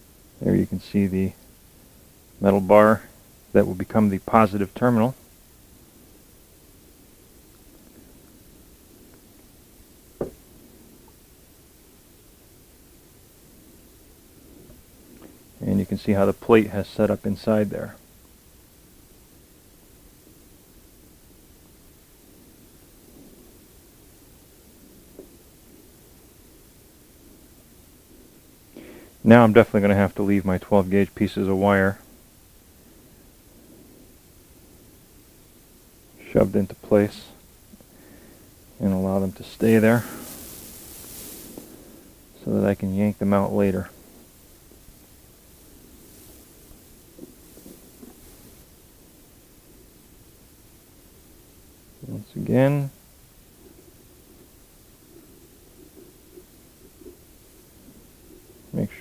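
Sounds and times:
faint room tone hiss: 0.0s - 59.0s
rustling of handled plastic pipe: 37.7s - 49.3s.

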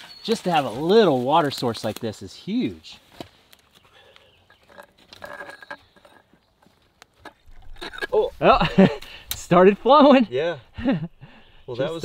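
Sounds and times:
metal bar clicking and scraping: 4.5s - 6.4s.

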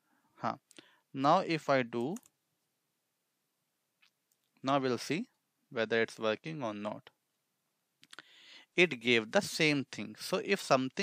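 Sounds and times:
person speaking: 0.4s - 2.3s, 4.6s - 7.2s, 8.1s - 11.0s.

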